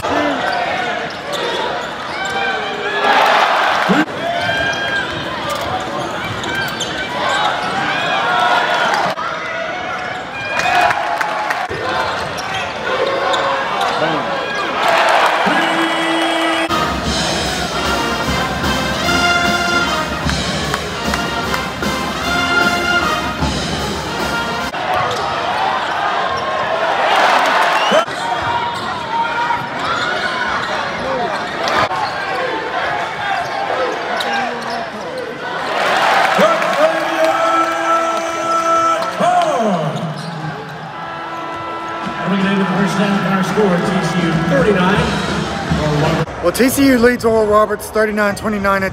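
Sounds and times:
crowd chatter: 0.0 - 48.9.

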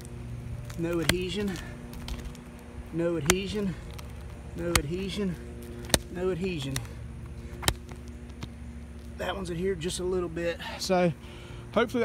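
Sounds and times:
shingle tab slapping down: 3.2 - 6.9, 7.5 - 8.6.

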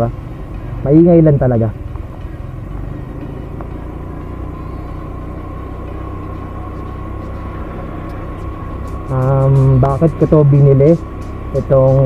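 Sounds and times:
scooter engine running: 0.0 - 12.0.

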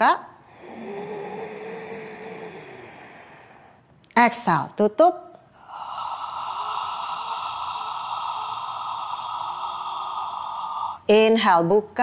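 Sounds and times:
woman exhaling steadily: 0.4 - 3.9, 5.5 - 11.2.

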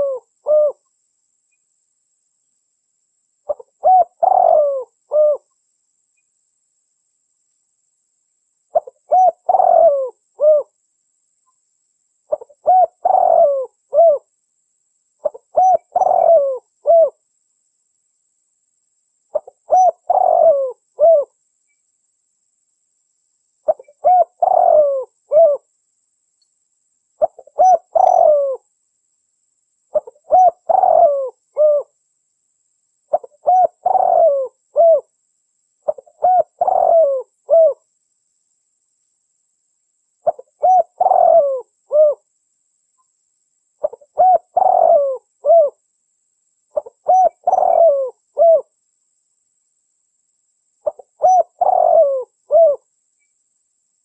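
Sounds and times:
dove cooing: 0.0 - 0.8, 3.5 - 5.5, 8.7 - 10.8, 12.3 - 14.3, 15.2 - 17.2, 19.3 - 21.4, 23.7 - 25.7, 27.2 - 28.7, 29.9 - 32.0, 33.1 - 35.1, 35.8 - 37.8, 40.2 - 42.2, 43.8 - 45.8, 46.8 - 48.7, 50.8 - 52.9.

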